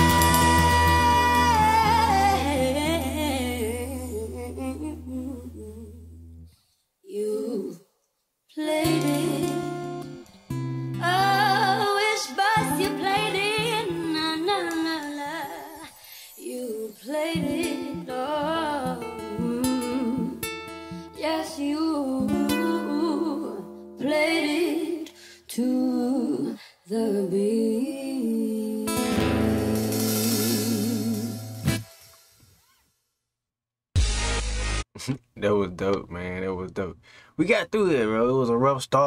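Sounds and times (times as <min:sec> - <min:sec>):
guitar accompaniment: 0:00.0 - 0:05.2, 0:08.8 - 0:15.6, 0:17.1 - 0:25.1, 0:28.9 - 0:32.4
woman singing: 0:00.0 - 0:06.2, 0:07.0 - 0:07.9, 0:08.5 - 0:10.2, 0:10.9 - 0:31.6.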